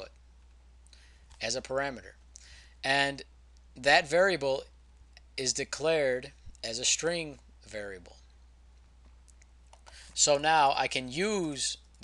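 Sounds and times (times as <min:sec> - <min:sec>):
low steady hum: 0:00.0 - 0:12.0
computer mouse clicks: 0:09.0 - 0:10.0.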